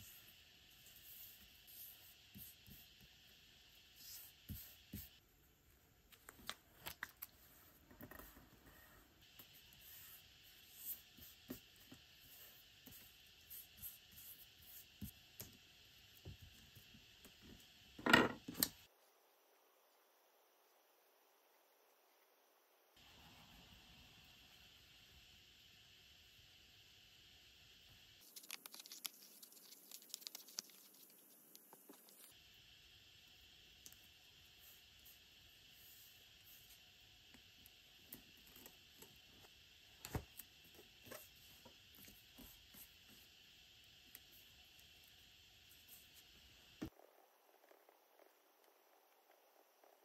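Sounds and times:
thin paper crinkling: 28.2s - 31.4s.

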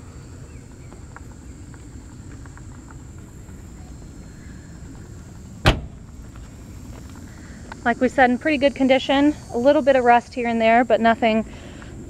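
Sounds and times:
car trunk lid slamming: 5.6s - 6.1s.

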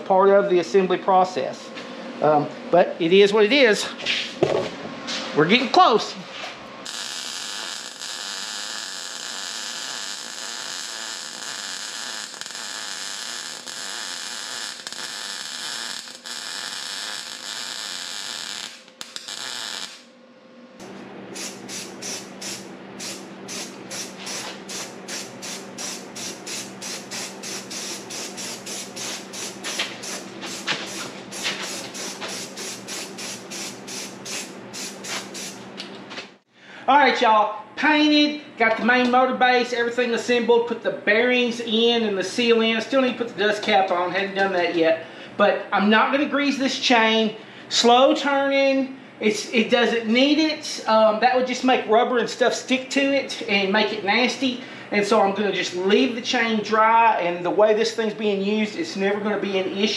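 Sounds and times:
arc welding crackling hiss: 6.8s - 20.1s, 21.4s - 35.6s
spray-paint can hissing: 21.4s - 35.6s.

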